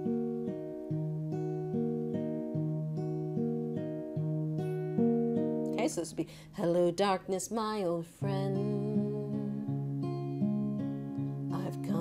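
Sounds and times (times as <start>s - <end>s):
fingerpicked acoustic guitar: 0.0s - 12.0s.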